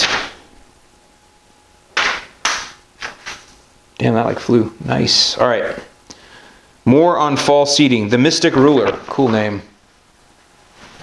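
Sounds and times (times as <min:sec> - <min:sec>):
paper rustling: 0:02.0 - 0:03.6
paper swishing through air: 0:02.0 - 0:03.6.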